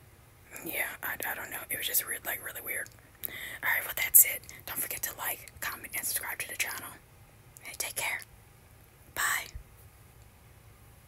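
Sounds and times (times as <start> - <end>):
faint background noise: 0.0 - 11.0
person whispering: 0.5 - 7.0, 7.6 - 8.2, 9.2 - 9.6.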